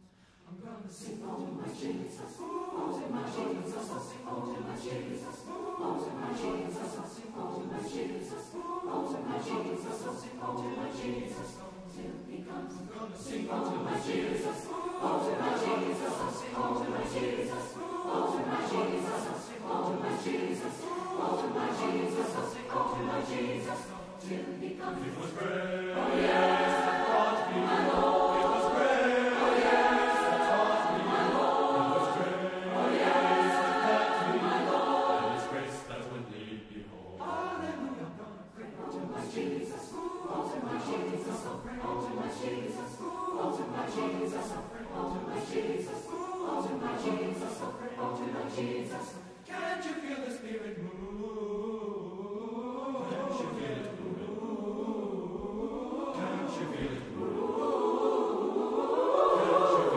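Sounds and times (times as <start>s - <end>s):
choir singing: 0.0s - 59.9s.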